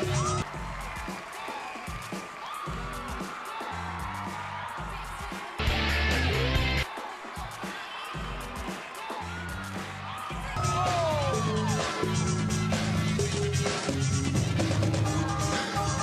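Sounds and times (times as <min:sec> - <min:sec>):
music with heavy bass beat: 0:03.9 - 0:16.0.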